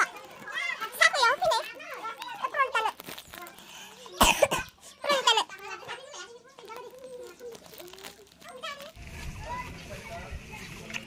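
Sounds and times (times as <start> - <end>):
person coughing loudly: 4.2 - 4.7.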